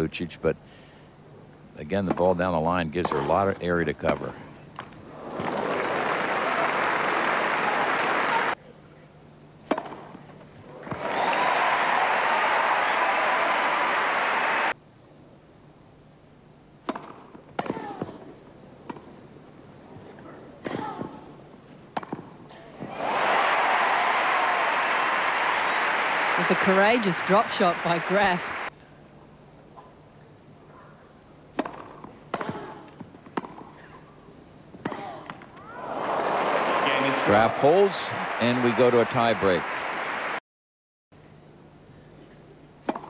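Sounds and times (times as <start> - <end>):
crowd applause: 5.2 - 8.6, 10.7 - 14.7, 22.8 - 28.7, 35.7 - 40.4
racket striking tennis ball: 9.6 - 10.2, 16.8 - 18.2, 21.9 - 23.0, 31.5 - 33.8.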